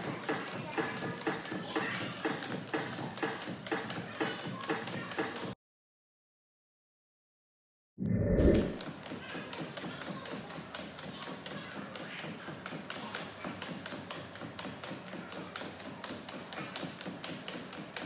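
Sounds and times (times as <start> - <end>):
jump ropes slapping wooden floor: 9.8 - 18.0.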